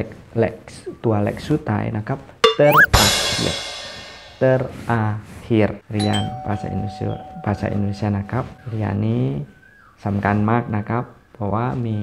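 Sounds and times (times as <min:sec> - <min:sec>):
bell-like ding: 0:02.4 - 0:03.6, 0:06.0 - 0:08.8.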